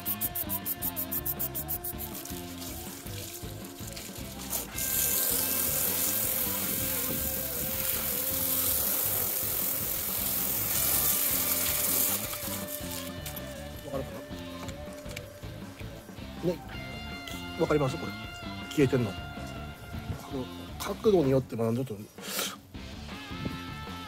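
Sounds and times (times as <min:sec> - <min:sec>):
trigger spray bottle pumped: 0:00.0 - 0:02.3
hissing water jet: 0:00.0 - 0:13.7
background music: 0:00.0 - 0:24.0.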